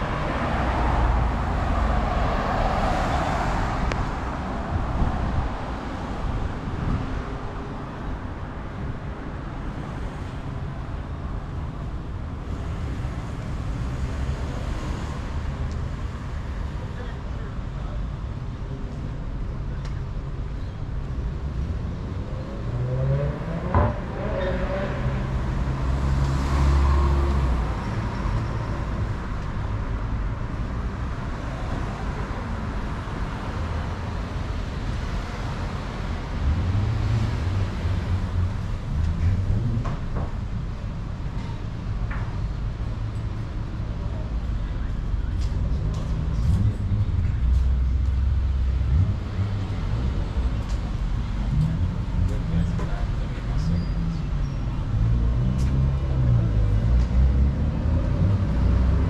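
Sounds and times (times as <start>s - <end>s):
cars passing on a road: 0.0s - 59.0s.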